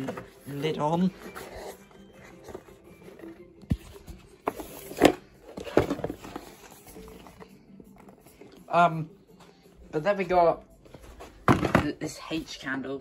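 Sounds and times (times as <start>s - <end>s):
faint background music: 0.0s - 13.0s
box knocks and bumps: 11.4s - 12.0s.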